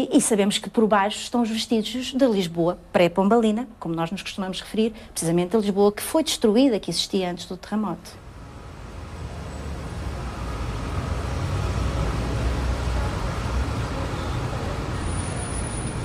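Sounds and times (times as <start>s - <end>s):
street traffic rumble: 0.0s - 16.0s.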